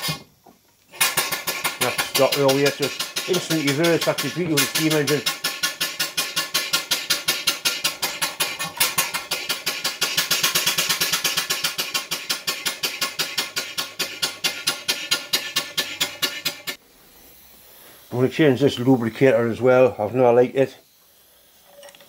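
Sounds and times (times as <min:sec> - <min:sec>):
steam engine knocking: 0:01.0 - 0:16.7.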